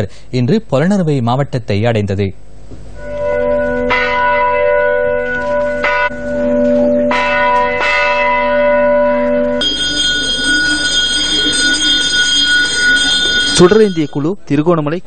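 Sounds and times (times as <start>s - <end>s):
sharp bell strikes: 3.0s - 14.4s
temple bells ringing: 3.0s - 14.4s.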